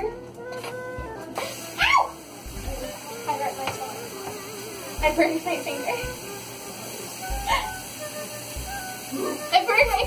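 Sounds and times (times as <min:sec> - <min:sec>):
faint steady hiss: 0:00.4 - 0:10.0.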